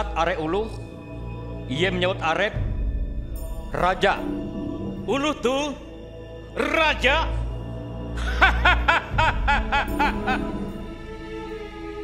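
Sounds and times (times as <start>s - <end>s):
man laughing: 8.2s - 10.8s.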